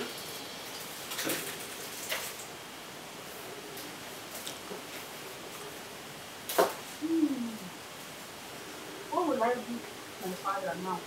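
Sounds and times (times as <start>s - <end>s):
person humming low: 7.0s - 7.8s.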